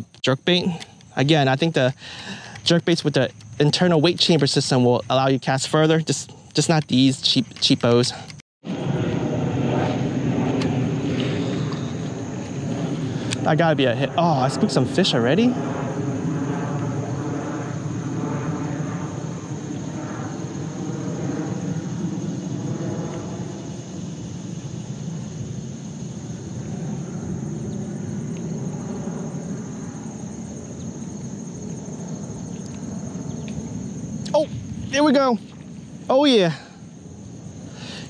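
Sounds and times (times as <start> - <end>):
insects droning: 0.0 - 38.0
low rough noise: 8.6 - 38.0.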